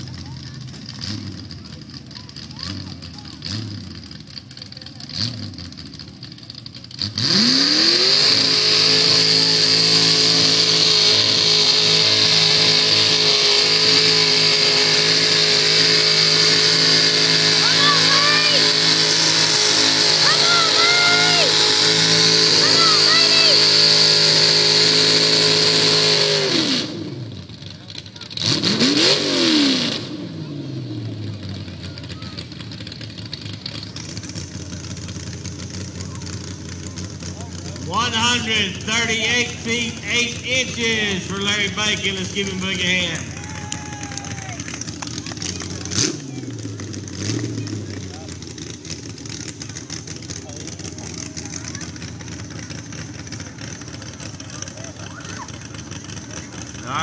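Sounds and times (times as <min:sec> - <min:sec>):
engine idling: 0:00.0 - 0:57.0
vehicle engine revving: 0:00.0 - 0:57.0.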